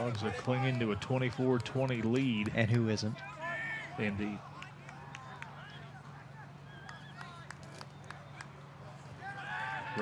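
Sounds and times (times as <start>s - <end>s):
distant voices and calls: 3.2s - 10.0s.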